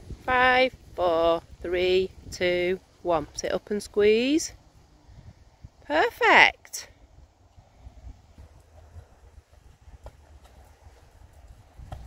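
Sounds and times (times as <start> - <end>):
horse hoofbeats on soft sand: 8.3 - 12.0.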